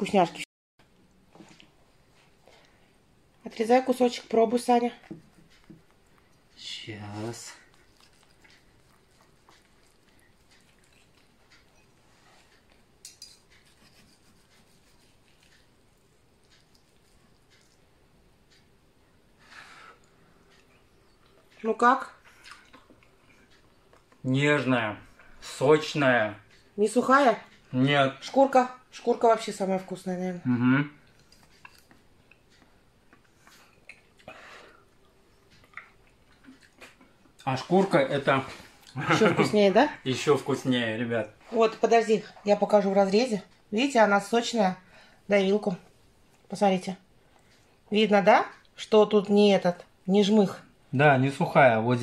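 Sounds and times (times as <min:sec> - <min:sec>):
knife and fork clicking: 0:13.0 - 0:13.9.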